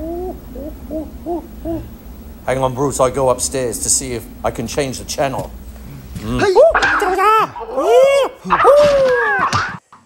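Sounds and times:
hooting calls: 0.0s - 2.4s.

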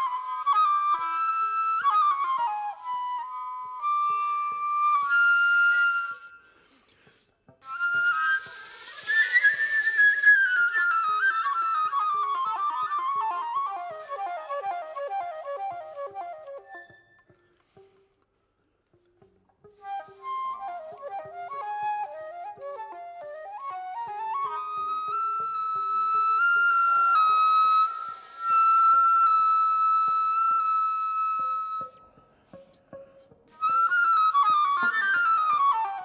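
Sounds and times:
solo flute playing: 0.0s - 6.8s, 7.6s - 17.4s, 19.6s - 32.4s, 33.5s - 36.0s.

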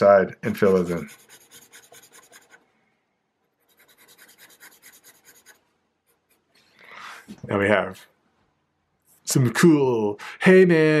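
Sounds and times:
marker scribbling on paper: 0.5s - 2.6s, 3.6s - 5.6s.

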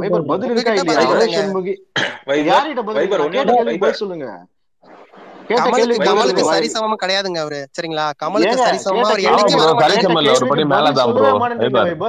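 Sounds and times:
men talking: 0.0s - 4.5s, 5.4s - 12.0s
person clearing throat: 2.0s - 2.3s.

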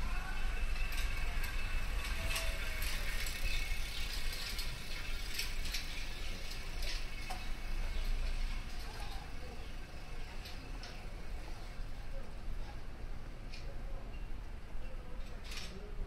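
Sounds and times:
bicycle rattling: 0.0s - 13.1s
low city hum: 0.0s - 16.0s.

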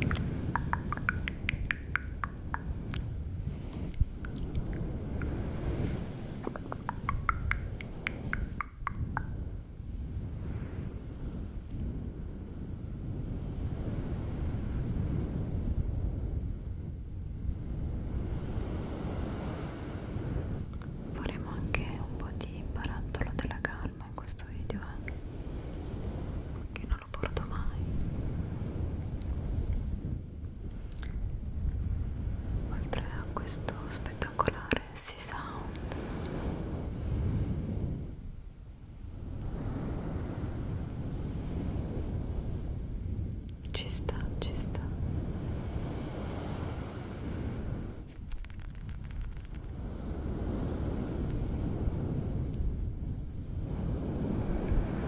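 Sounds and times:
person whispering: 6.4s - 7.5s, 21.2s - 25.2s, 26.7s - 28.0s, 32.7s - 36.0s, 43.7s - 45.0s
hands rubbing furry mic cover: 48.1s - 49.8s.

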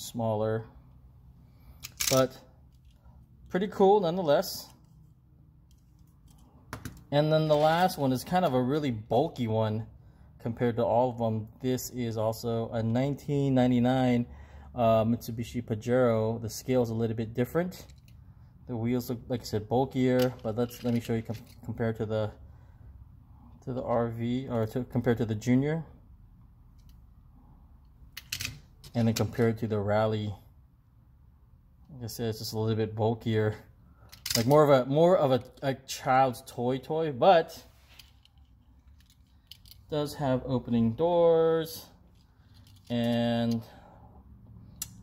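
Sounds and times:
toy cars clicking and clattering: 1.8s - 2.2s, 20.3s - 21.5s.

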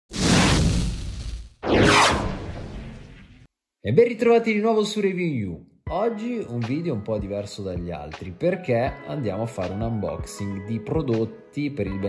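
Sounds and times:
whoosh sound effects: 1.6s - 3.5s.

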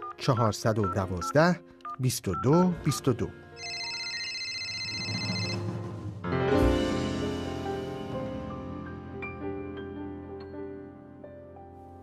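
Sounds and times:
man talking: 0.2s - 3.4s.

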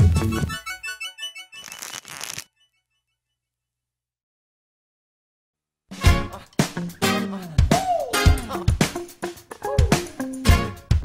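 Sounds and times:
rustling noise effect: 1.6s - 2.5s.

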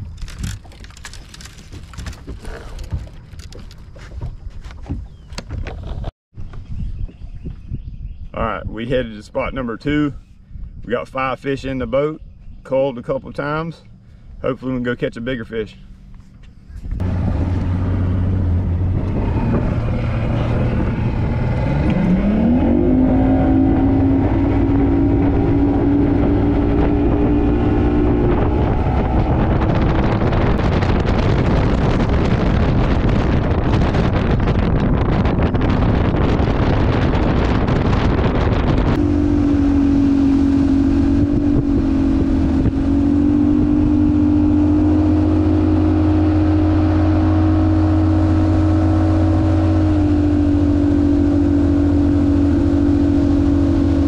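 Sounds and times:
outboard motor throttling up: 0.0s - 7.2s, 15.9s - 54.0s.

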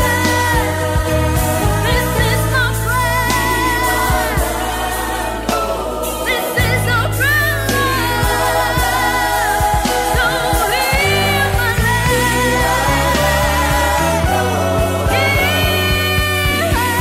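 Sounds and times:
backing choir: 0.0s - 17.0s
gospel singing voices: 0.0s - 17.0s
sustained bass notes: 0.0s - 17.0s.

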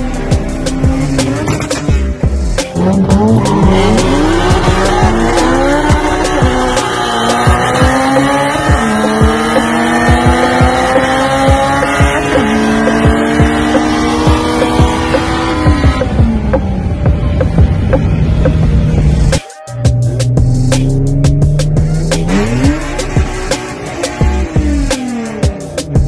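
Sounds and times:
car engines accelerating hard: 0.0s - 19.4s, 20.1s - 26.0s
music: 0.0s - 26.0s.

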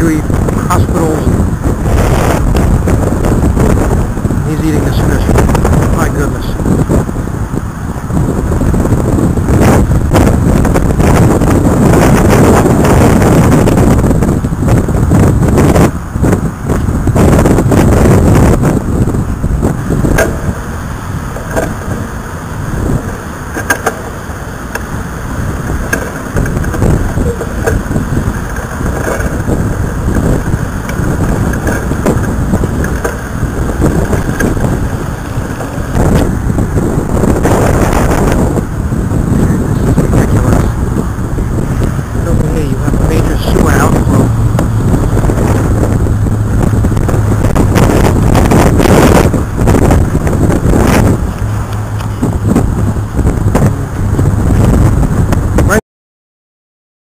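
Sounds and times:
road traffic: 0.0s - 55.8s
surf: 0.0s - 55.8s
wind buffeting microphone: 0.0s - 55.8s.

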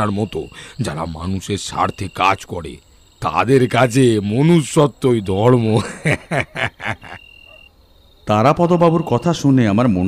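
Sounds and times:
frogs croaking: 0.0s - 10.0s
high-pitched insect trill: 0.0s - 10.0s.

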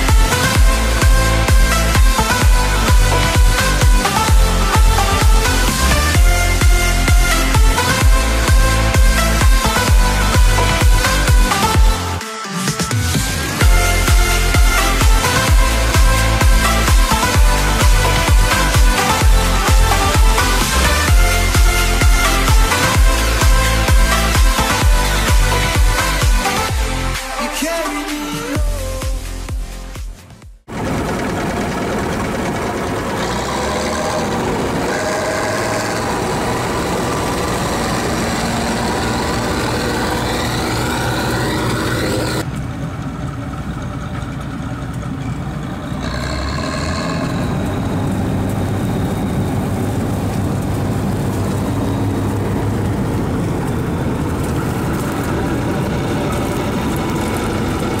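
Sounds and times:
combine harvester running: 0.0s - 28.1s, 30.7s - 58.0s.

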